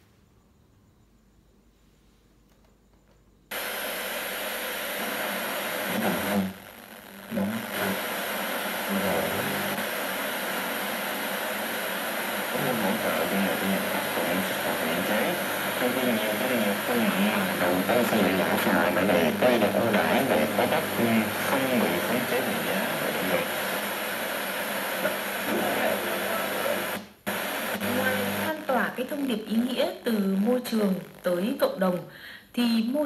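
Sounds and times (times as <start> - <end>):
radio switching on: 3.5 - 31.3
radio static hiss: 3.5 - 32.2
broadcast talk voice: 4.9 - 6.6, 7.3 - 32.0.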